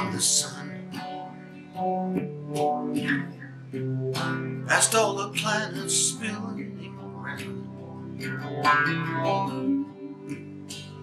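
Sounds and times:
person singing: 0.0s - 1.0s, 4.7s - 7.5s
acoustic guitar picked chords: 0.0s - 11.0s.

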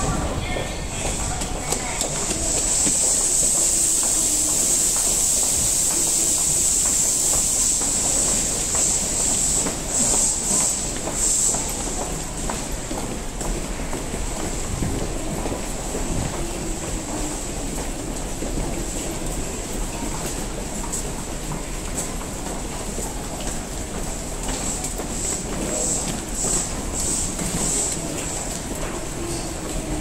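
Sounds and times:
train standing humming: 0.0s - 30.0s
electric train braking: 2.2s - 12.0s.

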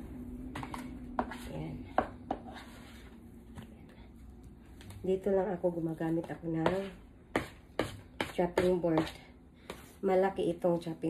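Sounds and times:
dough kneaded on wooden board: 0.0s - 11.0s.

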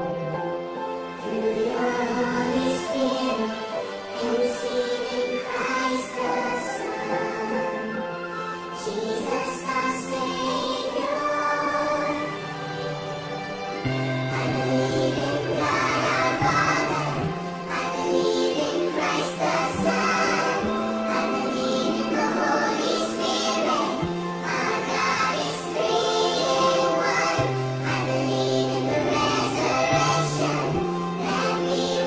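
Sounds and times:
instrumental accompaniment: 0.0s - 32.0s
pitched-up choir singing: 0.0s - 32.0s.

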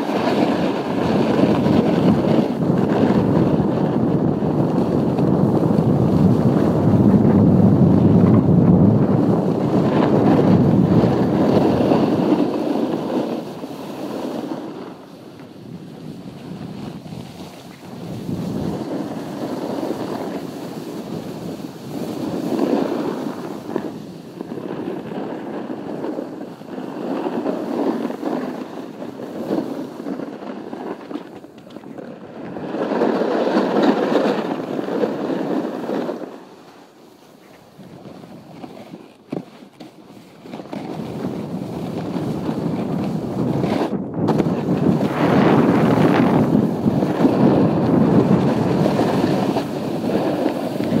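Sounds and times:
snowboard scraping over snow: 0.0s - 51.0s
wind on microphone: 0.0s - 51.0s.

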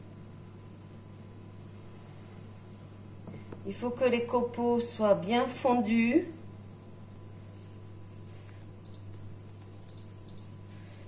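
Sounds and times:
induction hob humming: 0.0s - 11.0s.

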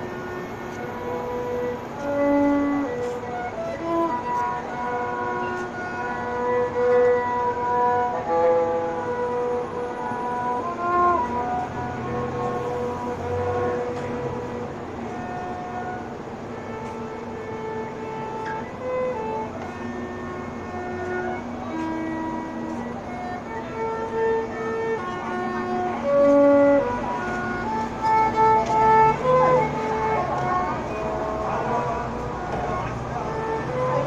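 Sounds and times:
violin slow melody: 0.0s - 34.0s.

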